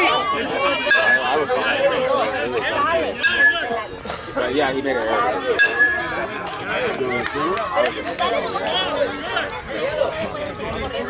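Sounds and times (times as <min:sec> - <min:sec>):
overlapping chatter of voices: 0:00.0 - 0:11.0.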